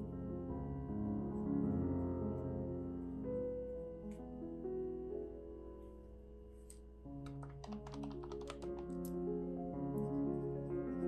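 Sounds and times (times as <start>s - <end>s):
soft solo piano music: 0.0s - 11.0s
calculator keys clicking: 7.3s - 9.0s.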